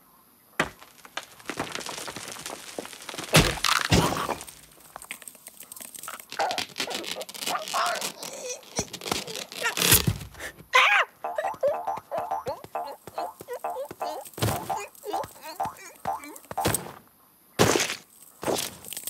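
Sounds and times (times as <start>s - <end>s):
heavy thuds: 0.6s - 5.0s
rock cracking: 0.6s - 10.5s, 11.4s - 19.0s
cartoon bird grunts and groans: 6.4s - 16.7s.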